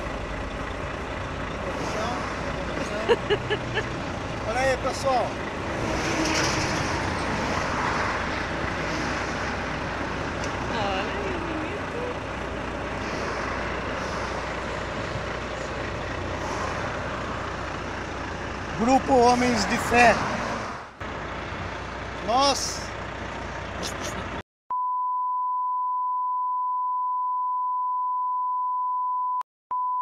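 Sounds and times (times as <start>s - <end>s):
highway traffic rushing: 0.0s - 24.4s
man's voice: 18.8s - 20.2s.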